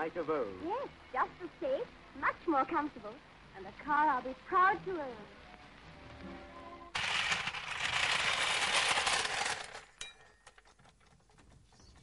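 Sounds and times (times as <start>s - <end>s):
crashing clatter: 7.0s - 11.0s
clinks and tinkles: 9.9s - 10.8s.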